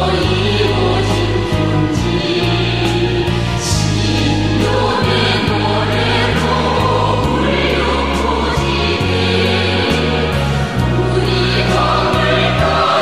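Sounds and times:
synthesizer accompaniment: 0.0s - 13.0s.

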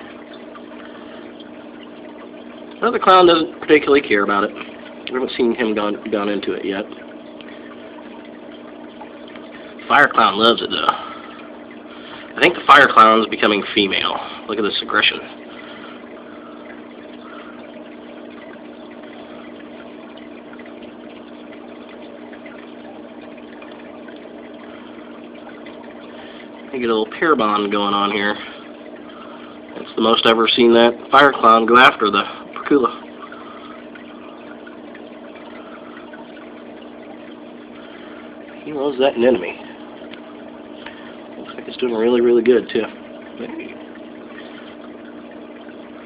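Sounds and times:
aquarium pump humming: 0.0s - 46.0s
water moving in tank: 0.0s - 46.0s.

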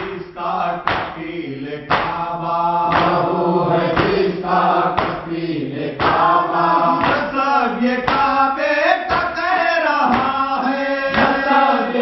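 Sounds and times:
men chanting a lament: 0.0s - 12.0s
chest-beating slaps: 0.8s - 2.3s, 2.9s - 3.3s, 3.9s - 4.4s, 5.0s - 8.4s, 9.1s - 9.4s, 10.1s - 10.4s, 11.1s - 11.6s.

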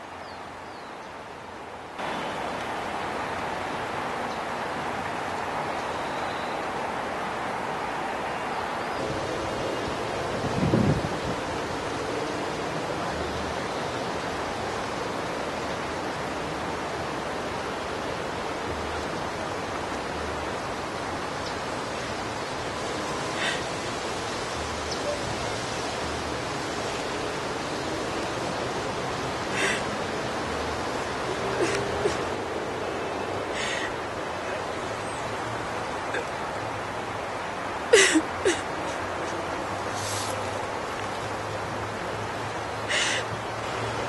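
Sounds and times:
wind hiss on microphone: 0.0s - 44.0s.

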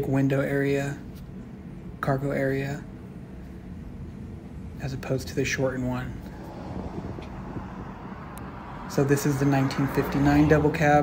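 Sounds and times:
low steady rumble: 0.0s - 11.0s
wind on microphone: 6.2s - 10.4s.

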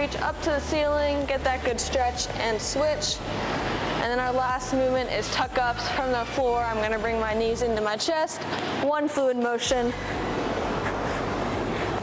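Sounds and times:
low hum: 9.8s - 12.0s
steady rushing roar: 9.8s - 12.0s.

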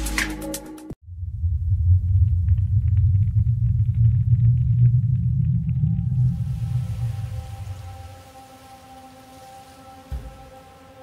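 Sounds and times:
low rumbling drone: 1.0s - 11.0s.

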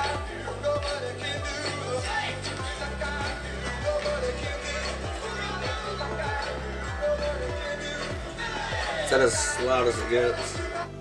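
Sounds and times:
kick drum beat: 0.0s - 10.8s
heavy bass line: 0.0s - 11.0s.

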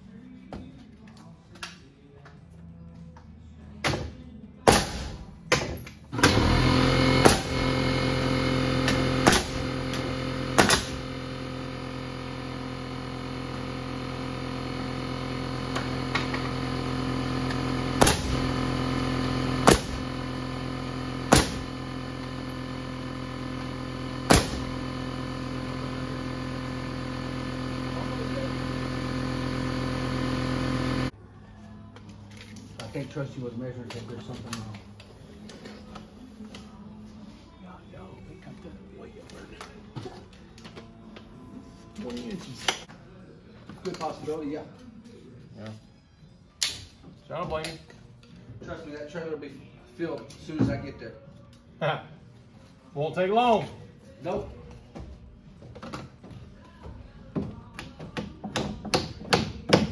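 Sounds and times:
nail gun firing: 4.7s - 7.7s, 8.8s - 11.1s, 18.0s - 18.5s, 19.6s - 20.2s, 21.3s - 21.8s, 24.2s - 24.8s
air compressor motor humming: 6.1s - 31.2s.

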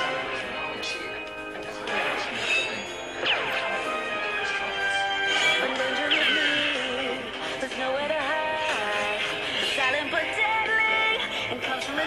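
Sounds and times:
cartoon theme music: 1.8s - 7.4s.

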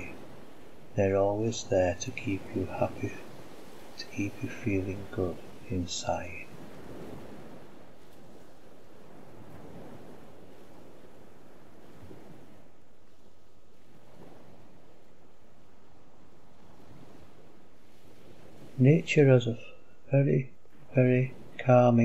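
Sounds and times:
sea waves washing onto shore: 0.0s - 22.0s.

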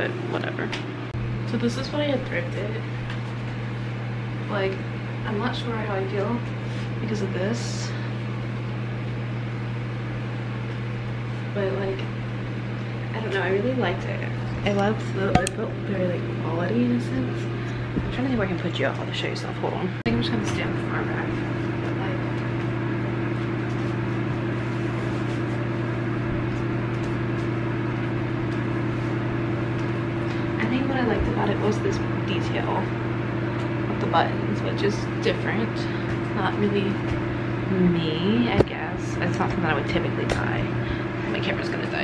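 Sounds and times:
electric fan running: 0.0s - 42.0s
low mechanical drone: 0.0s - 42.0s
higher steady tone: 14.7s - 17.6s.

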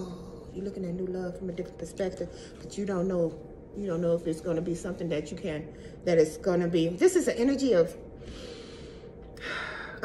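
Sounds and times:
woman breathing: 8.2s - 10.0s.

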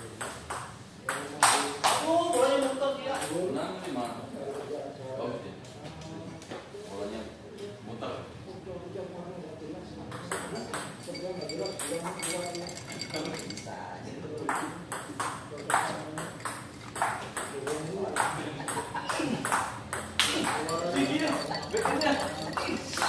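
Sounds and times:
table tennis ball clicking: 14.5s - 18.3s.

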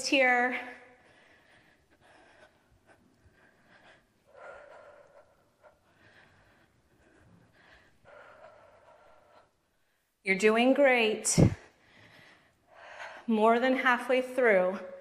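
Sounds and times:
woman breathing hard: 0.6s - 10.2s, 11.3s - 13.3s.

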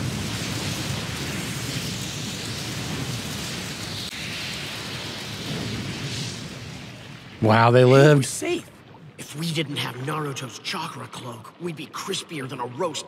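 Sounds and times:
fire blast rushing: 0.0s - 10.3s.

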